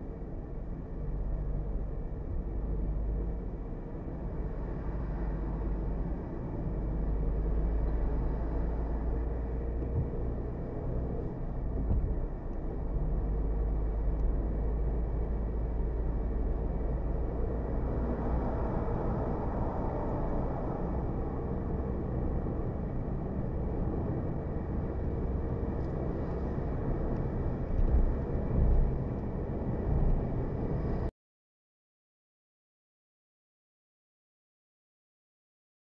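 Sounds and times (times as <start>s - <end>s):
car road and engine noise: 0.0s - 31.1s.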